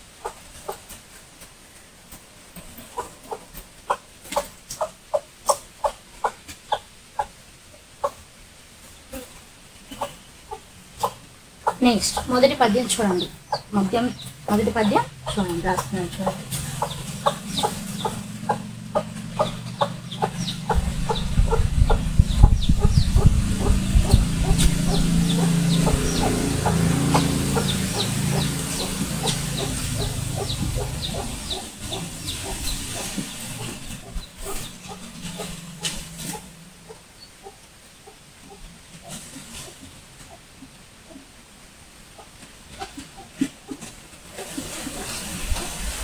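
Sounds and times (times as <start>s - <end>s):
chickens clucking: 0.0s - 41.4s, 42.0s - 46.0s
low rumble: 15.1s - 37.0s.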